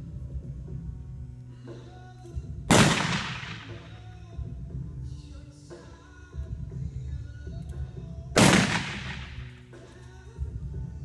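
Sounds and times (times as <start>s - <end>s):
background music: 0.0s - 11.0s
revolver shot with reverberation: 2.7s - 4.0s, 8.4s - 9.6s.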